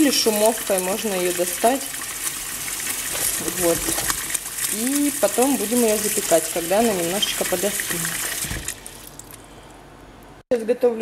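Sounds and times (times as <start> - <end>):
tap water running into pot: 0.0 - 9.4.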